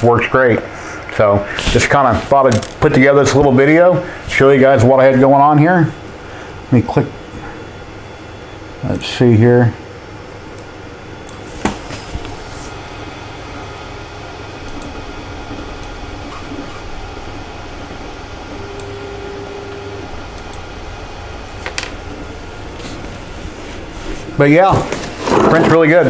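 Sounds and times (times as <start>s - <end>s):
fans humming: 0.0s - 26.0s.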